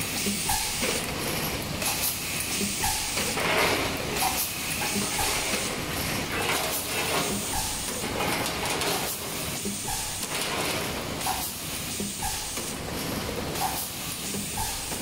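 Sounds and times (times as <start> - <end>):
machine clicks and knocks: 0.2 - 15.0.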